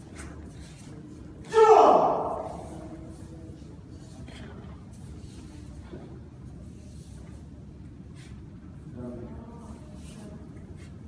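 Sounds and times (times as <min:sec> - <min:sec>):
loud shout: 0:01.5 - 0:02.6.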